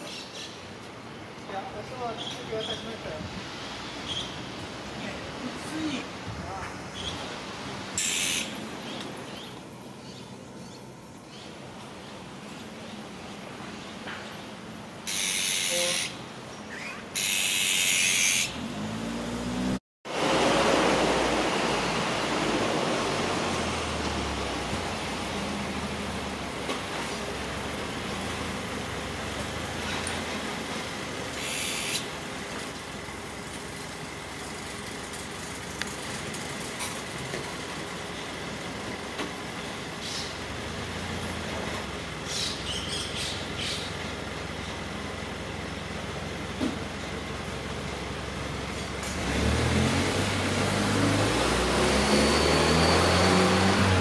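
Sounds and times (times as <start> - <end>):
distant city traffic hum: 0.0 - 54.0
harsh bird calls: 8.0 - 10.3, 15.1 - 18.6, 31.3 - 32.1.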